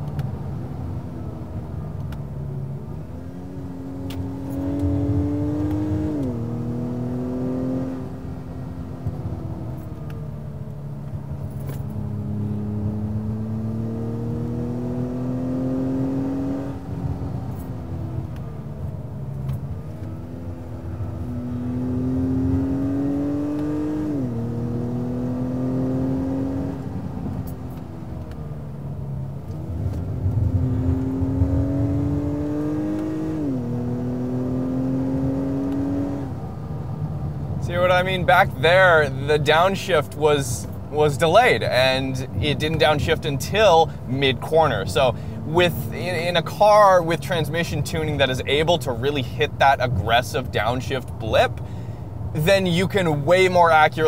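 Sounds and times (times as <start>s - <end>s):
car engine accelerating through gears: 0.0s - 54.0s.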